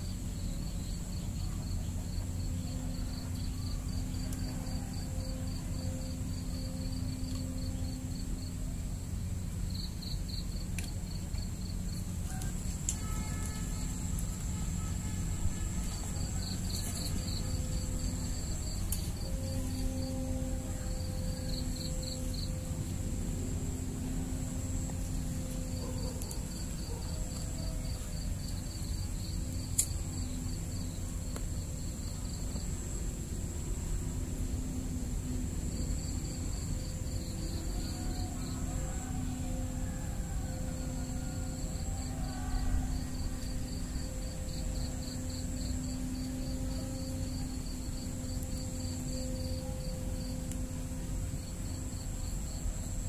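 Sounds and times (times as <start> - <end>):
insects chirping: 0.0 - 53.0
low background rumble: 0.0 - 53.0
thin high whine: 0.0 - 53.0.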